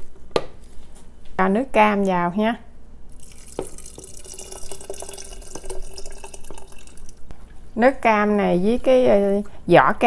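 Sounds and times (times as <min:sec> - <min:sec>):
juice pouring into a glass jar: 0:03.1 - 0:07.3.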